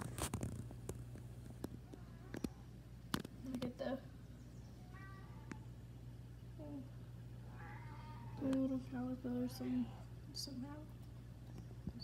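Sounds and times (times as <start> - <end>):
steady low hum: 0.0 - 12.0
meow-like cry: 7.5 - 8.4.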